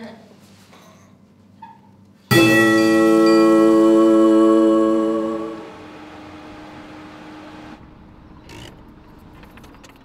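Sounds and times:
held music note: 2.3s - 7.8s
car engine rumble inside cabin: 5.7s - 10.0s.

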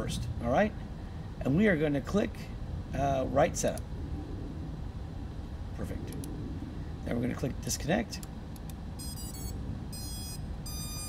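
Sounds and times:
soft clicks: 8.2s - 8.8s
electronic startup beeps: 9.0s - 11.0s.

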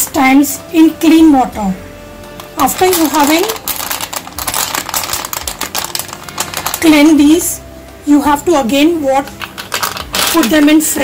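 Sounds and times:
clam shells clattering in bowl: 2.4s - 6.9s, 9.4s - 10.7s.

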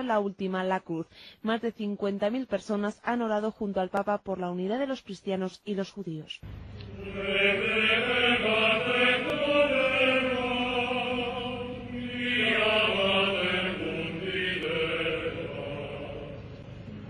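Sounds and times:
voices singing religious chant: 7.0s - 16.6s.

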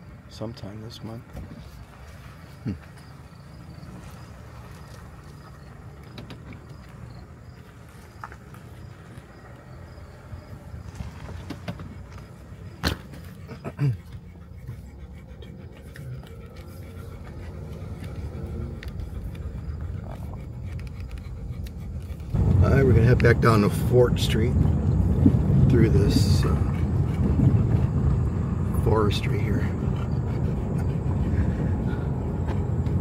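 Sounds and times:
car engine and road hum: 0.0s - 33.0s.

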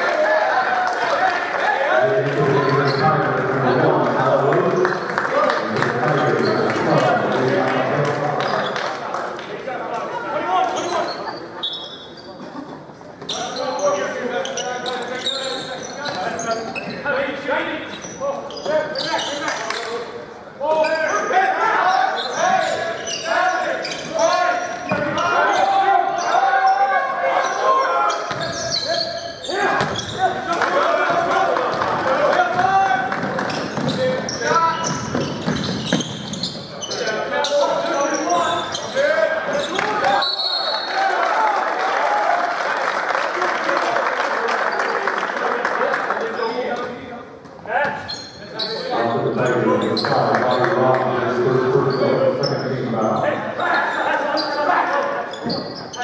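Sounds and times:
echoing chatter and shouts: 0.0s - 56.0s.

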